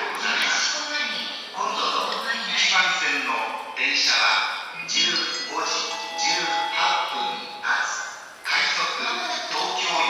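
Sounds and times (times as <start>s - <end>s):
public address announcement: 0.0s - 10.0s
chime melody: 5.3s - 8.0s.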